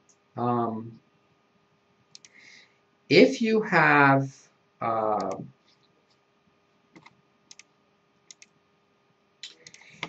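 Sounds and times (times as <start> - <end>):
computer mouse double-click: 2.1 - 2.4, 7.0 - 7.7, 8.3 - 8.5.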